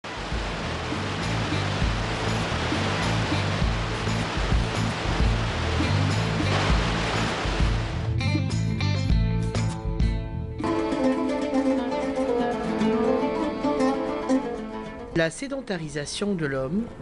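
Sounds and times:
water rushing over weir: 0.0s - 8.1s
music with low bass: 0.1s - 10.9s.

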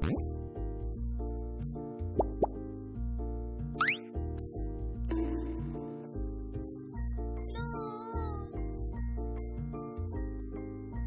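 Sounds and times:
background music held notes: 0.0s - 11.0s
rising plop sound effects: 2.2s - 2.6s.

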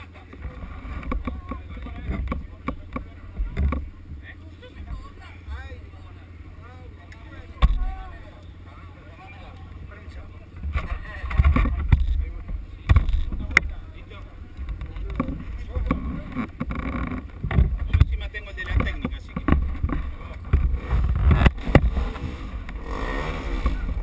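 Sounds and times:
low wind rumble: 0.0s - 24.0s.

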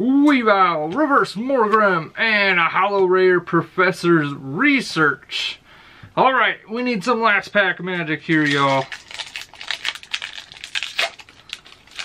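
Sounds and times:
foil wrapper crinkling: 8.3s - 12.0s.

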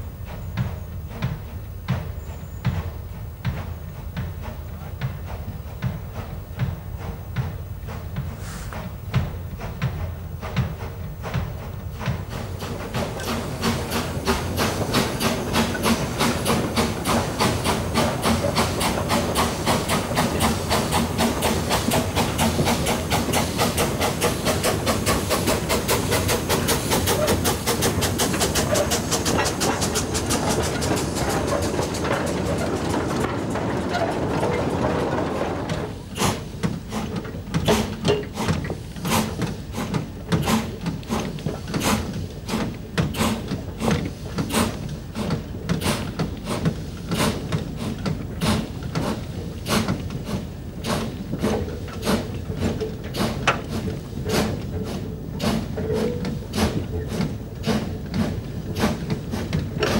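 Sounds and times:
steam hissing: 0.0s - 59.9s
steam locomotive exhaust beats: 0.0s - 59.9s.

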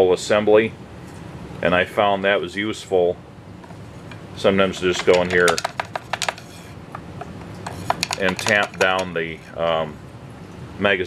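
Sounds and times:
wooden stick scraping in channel: 4.7s - 9.5s.

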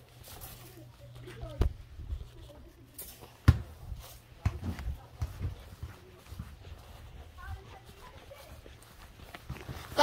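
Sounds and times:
footsteps on concrete: 0.0s - 10.0s.

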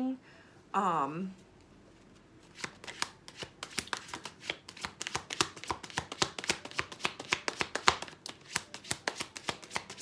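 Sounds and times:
cards being shuffled: 2.0s - 10.0s.

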